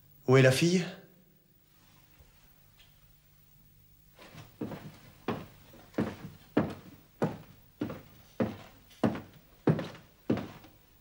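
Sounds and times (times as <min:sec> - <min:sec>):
footsteps on hard floor: 0:04.2 - 0:10.8.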